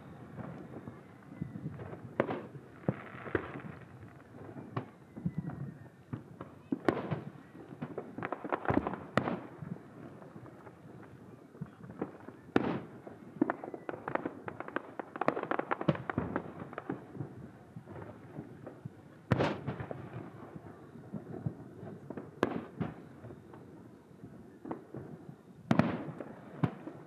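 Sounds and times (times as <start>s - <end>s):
fireworks bursting and popping: 0.0s - 27.0s.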